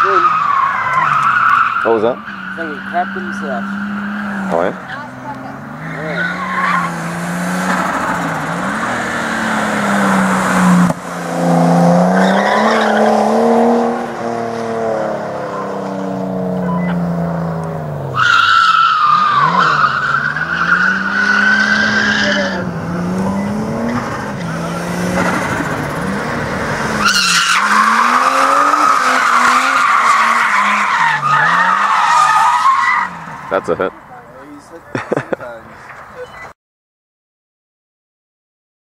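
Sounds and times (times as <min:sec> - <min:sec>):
tyres squealing: 0:00.0 - 0:07.0, 0:18.2 - 0:23.6, 0:27.0 - 0:34.6
car engine revving: 0:00.0 - 0:34.8.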